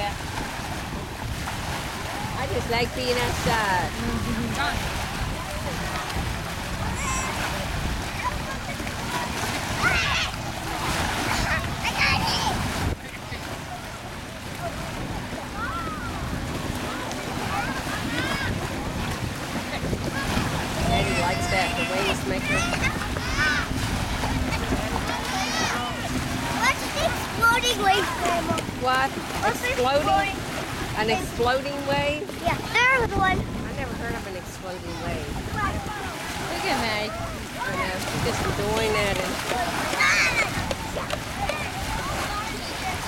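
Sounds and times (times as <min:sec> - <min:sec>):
small waves breaking on shore: 0:00.0 - 0:43.0
wind rumbling on microphone: 0:00.0 - 0:43.0.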